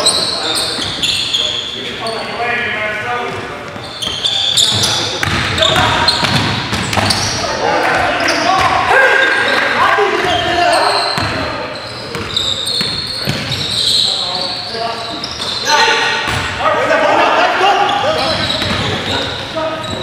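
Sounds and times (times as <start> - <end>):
sneaker squeaks: 0.0 - 7.6, 8.2 - 16.6, 17.7 - 20.0
players calling out: 3.8 - 20.0
basketball bouncing on wooden floor: 4.7 - 7.2.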